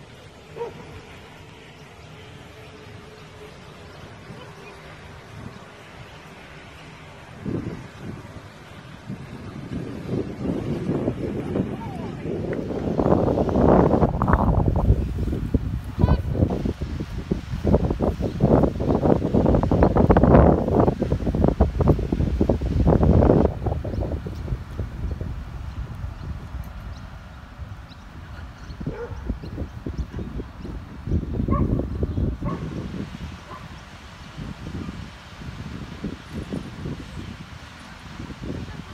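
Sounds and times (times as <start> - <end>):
wind rumbling on microphone: 0.0 - 38.9.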